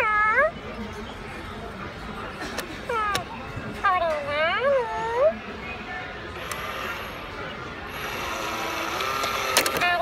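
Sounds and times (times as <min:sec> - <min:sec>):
small battery motor whirring: 0:06.4 - 0:07.3, 0:07.9 - 0:10.0.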